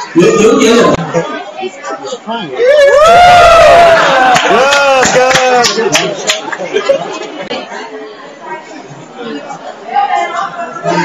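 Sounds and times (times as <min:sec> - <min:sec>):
several voices chattering: 0:00.0 - 0:03.0, 0:04.1 - 0:11.0.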